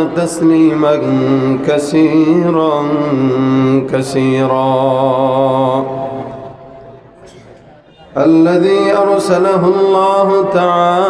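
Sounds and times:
man chanting: 0.0 - 6.6, 8.1 - 11.0.

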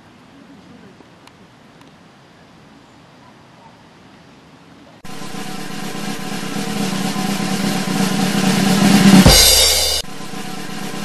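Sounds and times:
held low note: 5.0 - 11.0
snare drum roll: 5.0 - 11.0.

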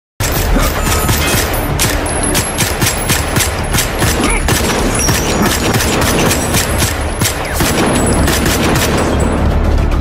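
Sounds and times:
rapid pistol gunfire: 0.2 - 9.3.

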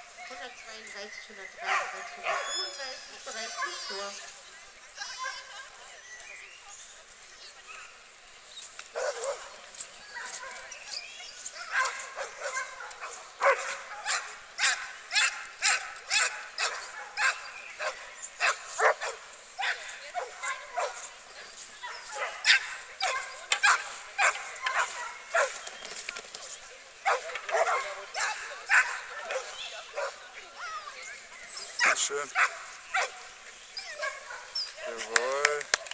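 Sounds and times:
dog barking: 1.6 - 2.7, 9.0 - 9.5, 11.6 - 21.1, 21.8 - 25.6, 27.0 - 30.2, 31.8 - 33.2, 33.9 - 35.1.

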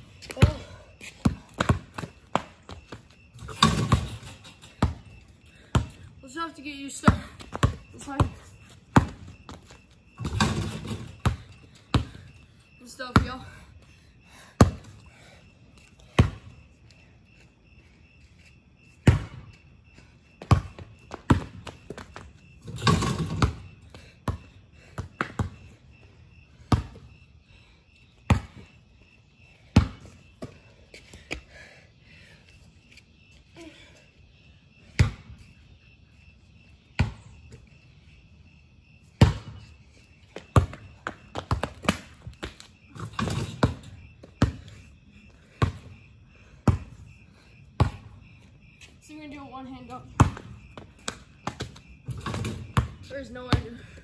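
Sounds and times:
basketball bouncing on concrete: 0.2 - 5.0, 5.6 - 6.1, 6.9 - 12.3, 13.0 - 13.6, 14.6 - 15.0, 16.0 - 16.5, 19.0 - 19.6, 20.4 - 25.8, 26.6 - 27.1, 28.3 - 28.7, 29.6 - 30.6, 34.8 - 35.4, 37.0 - 37.6, 39.2 - 39.7, 40.3 - 46.0, 46.6 - 47.1, 47.7 - 48.3, 49.3 - 54.0
basketball clattering: 3.4 - 5.0, 22.6 - 23.6.

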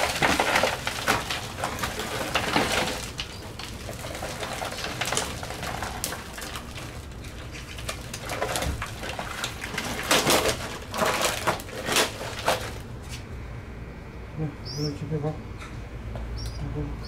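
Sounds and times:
twigs crackling and rustling: 0.0 - 13.3.

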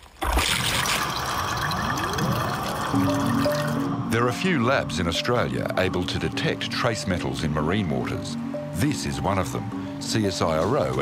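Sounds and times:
water pouring from bottle: 0.0 - 3.9
music with held notes: 2.9 - 11.0.

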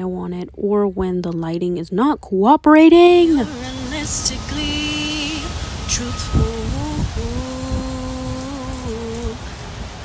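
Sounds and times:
woman humming: 3.2 - 9.4
wind buffeting microphone: 3.3 - 10.0.

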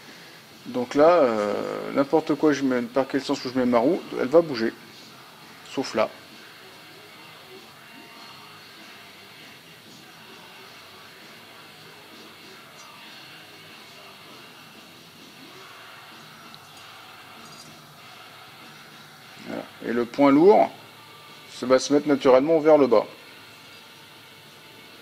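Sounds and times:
room background hiss: 0.0 - 25.0.

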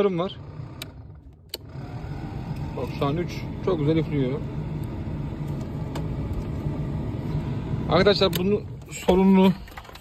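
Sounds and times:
heater blower fan rushing air: 1.6 - 8.8.

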